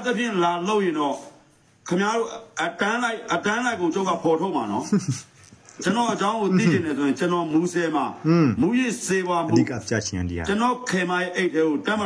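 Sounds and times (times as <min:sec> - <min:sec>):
man speaking: 0:04.8 - 0:07.5, 0:08.1 - 0:10.8.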